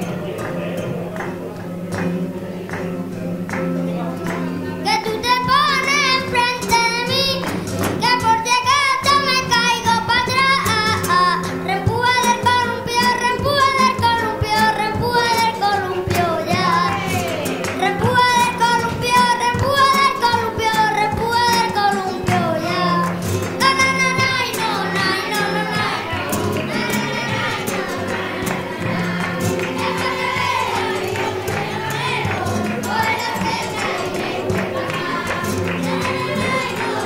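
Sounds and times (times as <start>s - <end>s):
flamenco guitar: 0.0s - 37.0s
rhythmic hand-clapping: 0.0s - 37.0s
child singing flamenco: 3.6s - 37.0s.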